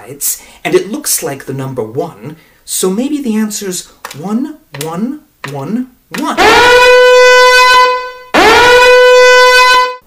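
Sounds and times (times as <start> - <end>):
horn-like alarm blasts: 6.4 - 10.0.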